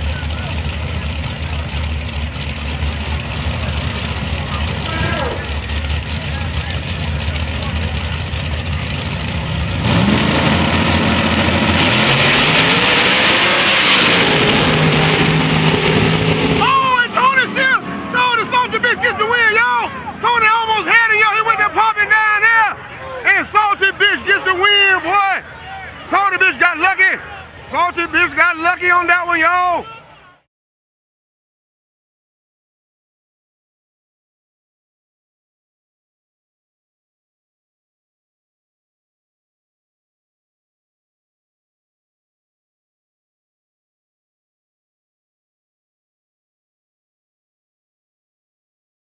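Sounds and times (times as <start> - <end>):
race car engines idling and revving: 0.0 - 30.4
excited shouting voices: 16.6 - 30.4.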